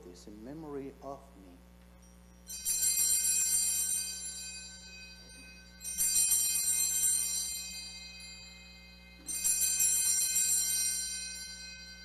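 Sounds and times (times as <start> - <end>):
altar bells ringing: 1.9 - 12.0.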